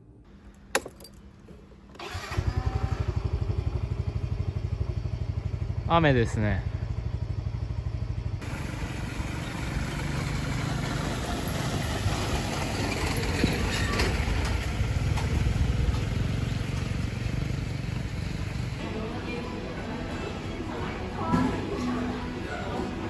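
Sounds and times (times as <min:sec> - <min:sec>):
motorbike passing on wet road: 0:08.4 - 0:18.8.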